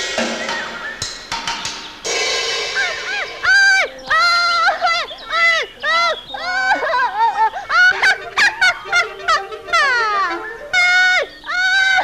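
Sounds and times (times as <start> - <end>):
cartoon character squawking calls: 2.8 - 6.8, 7.7 - 12.0.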